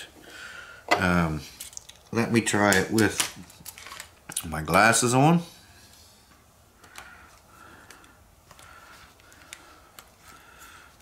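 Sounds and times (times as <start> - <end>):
plastic eyeglass frames handled: 2.7 - 4.9, 6.8 - 10.4.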